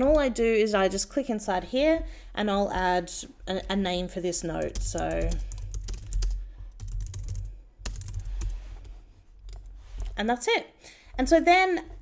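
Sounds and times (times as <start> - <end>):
computer keyboard typing: 4.5 - 8.6.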